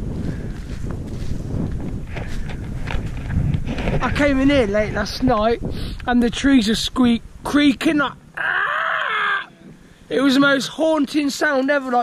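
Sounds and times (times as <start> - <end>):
man imitating creaking tree: 8.4 - 9.7.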